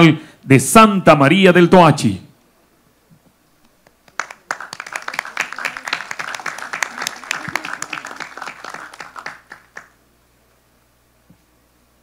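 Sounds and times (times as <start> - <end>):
audience applauding: 4.0 - 10.0.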